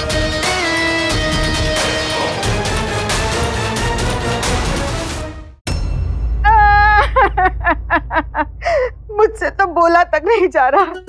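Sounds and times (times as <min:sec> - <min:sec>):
woman wailing cries: 0:06.5 - 0:08.8.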